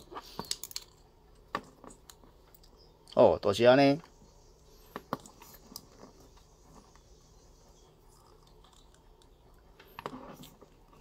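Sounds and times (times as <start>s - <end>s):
low room hiss: 0.0s - 11.0s.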